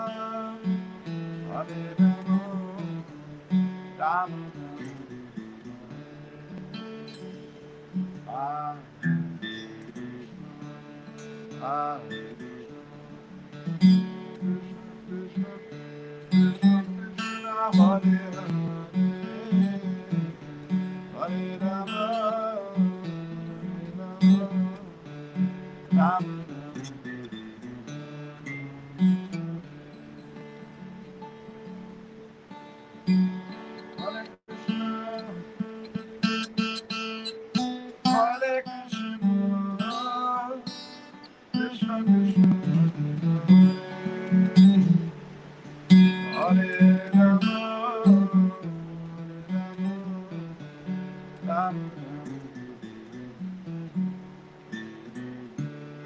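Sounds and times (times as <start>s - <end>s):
acoustic guitar picking: 0.0s - 56.0s.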